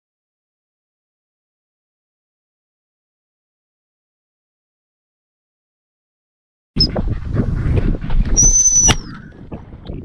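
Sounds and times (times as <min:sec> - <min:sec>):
wind on microphone: 0:06.8 - 0:10.0.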